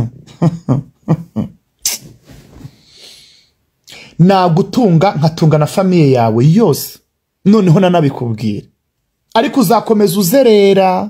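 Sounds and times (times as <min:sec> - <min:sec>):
person laughing: 0:00.0 - 0:02.0.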